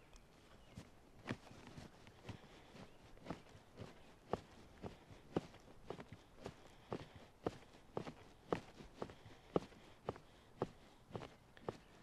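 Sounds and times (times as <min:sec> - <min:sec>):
footsteps through grass: 0:00.0 - 0:12.0.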